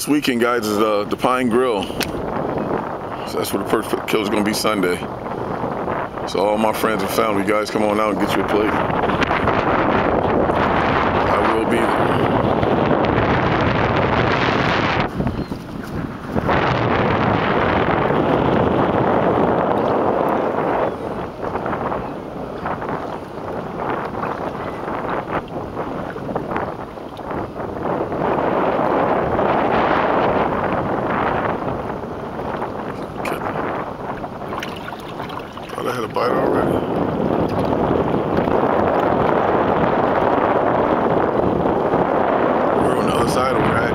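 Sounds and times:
waves against boat: 0.0 - 43.9
wind buffeting microphone: 0.0 - 43.9.

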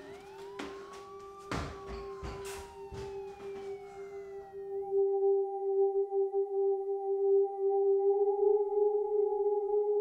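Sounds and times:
slow gliding siren-like tones: 0.0 - 5.3
sharp knocks: 0.6 - 4.0.

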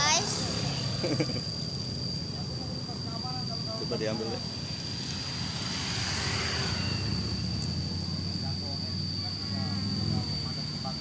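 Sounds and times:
high-pitched whine: 0.0 - 11.0
low rumble of traffic: 0.0 - 11.0.

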